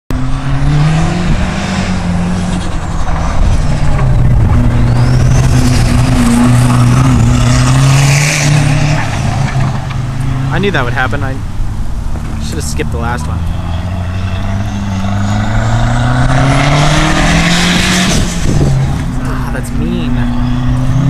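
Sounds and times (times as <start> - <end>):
car engine revving: 0.1 - 21.0.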